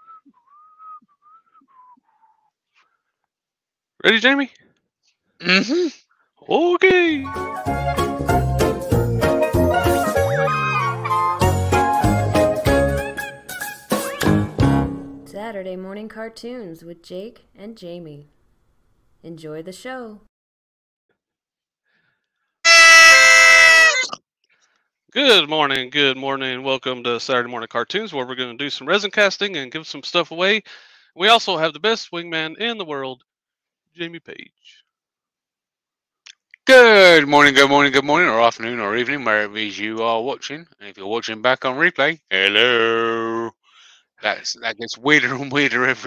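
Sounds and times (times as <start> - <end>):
person whistling a tune: 0.0 - 2.4
party horns blaring: 22.6 - 24.2.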